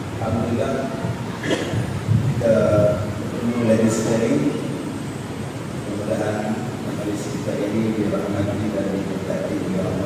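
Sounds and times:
steady background noise: 0:00.0 - 0:10.0
man speaking into a microphone: 0:00.1 - 0:01.3, 0:02.2 - 0:04.8, 0:05.8 - 0:10.0.

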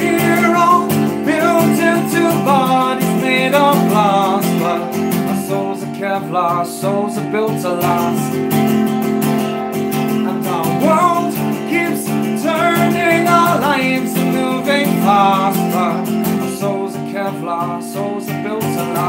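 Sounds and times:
man singing: 0:00.0 - 0:08.6, 0:10.0 - 0:19.0
acoustic guitar strumming: 0:00.0 - 0:19.0.

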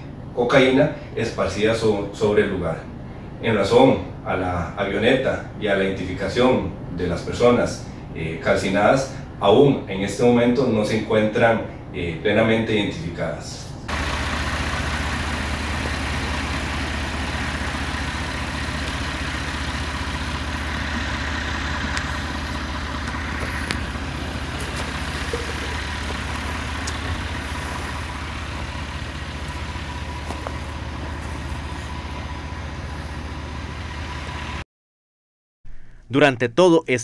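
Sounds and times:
engine running steadily: 0:13.9 - 0:34.6.

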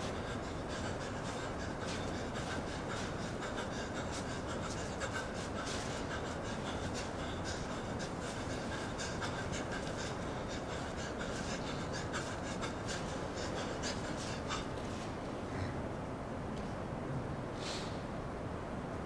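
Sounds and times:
person breathing: 0:00.0 - 0:15.8, 0:17.6 - 0:18.1
steady hiss: 0:00.0 - 0:19.0.

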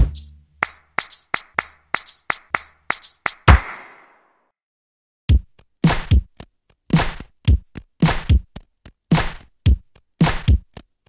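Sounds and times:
sharp clap-like percussion hits: 0:00.0 - 0:04.2, 0:05.8 - 0:06.2, 0:07.0 - 0:07.3, 0:08.0 - 0:08.4, 0:09.1 - 0:09.5, 0:10.2 - 0:10.6.

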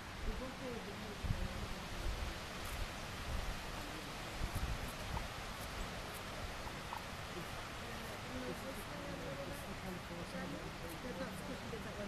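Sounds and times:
steady outdoor hiss: 0:00.0 - 0:12.0
wind buffeting microphone: 0:00.0 - 0:12.0.

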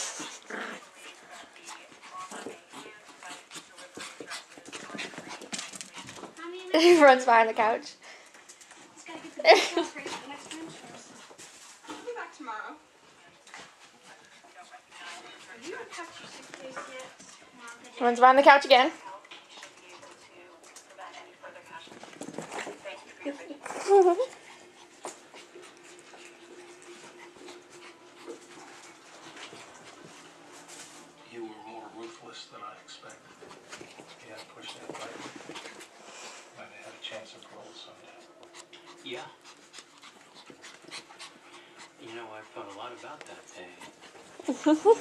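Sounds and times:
dogs scuffling with rope toy: 0:00.0 - 0:07.6, 0:08.2 - 0:45.0.

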